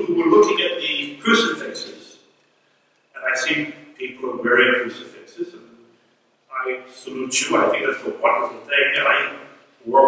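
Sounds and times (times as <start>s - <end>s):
man speaking: 0.0s - 2.3s, 3.1s - 10.0s.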